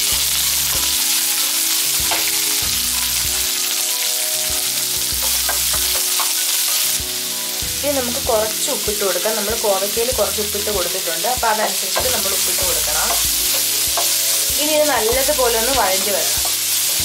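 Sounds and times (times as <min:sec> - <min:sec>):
onions sizzling in hot oil: 0:00.0 - 0:17.0
spatula scraping and tapping pan: 0:02.0 - 0:02.5, 0:05.0 - 0:07.1, 0:12.0 - 0:17.0.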